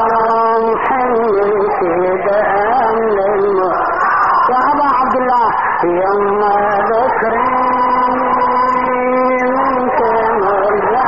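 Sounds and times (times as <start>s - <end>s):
man chanting: 0.0s - 3.9s, 4.5s - 11.0s.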